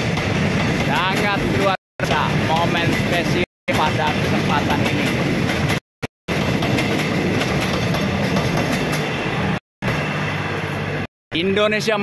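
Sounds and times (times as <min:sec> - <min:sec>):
train wheels rumbling on rails: 0:00.0 - 0:11.1.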